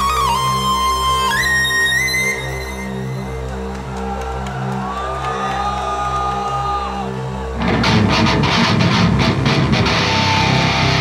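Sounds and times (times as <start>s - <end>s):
distorted electric guitars: 7.6s - 11.0s
drums: 7.6s - 11.0s.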